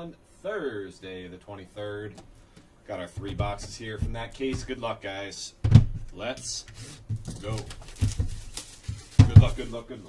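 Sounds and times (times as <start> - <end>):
cardboard boxes being handled: 3.1 - 4.8, 6.7 - 10.0
low knocks: 3.1 - 4.8.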